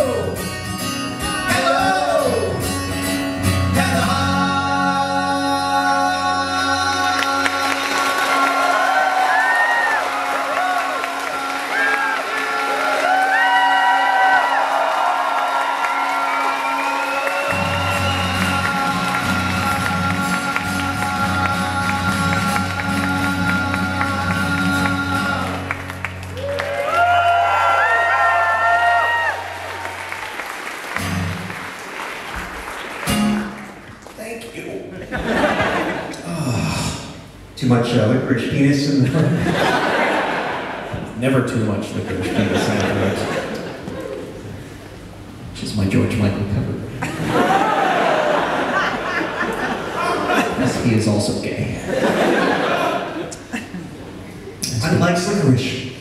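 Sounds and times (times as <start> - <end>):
acoustic guitar: 0.0 - 13.3, 16.0 - 27.4, 28.4 - 34.4
men singing: 3.8 - 8.9, 17.3 - 25.8
audience applause and cheering: 6.9 - 34.2, 47.0 - 51.0.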